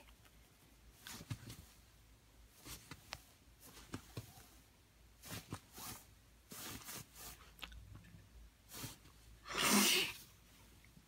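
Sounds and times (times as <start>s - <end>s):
small dog sneezing: 9.4s - 10.2s.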